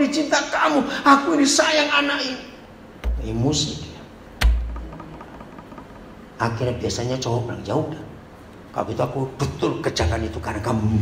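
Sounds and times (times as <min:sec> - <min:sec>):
heavy thump: 0:03.0 - 0:03.6, 0:04.4 - 0:06.4.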